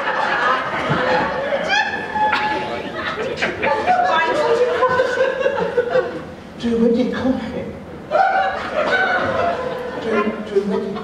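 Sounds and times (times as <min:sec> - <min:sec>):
people chuckling: 0:00.0 - 0:06.3, 0:08.1 - 0:11.0
people speaking: 0:09.9 - 0:11.0.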